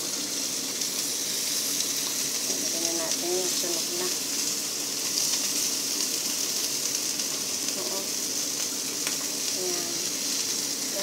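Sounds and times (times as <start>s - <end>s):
fish sizzling in hot oil: 0.0s - 11.0s.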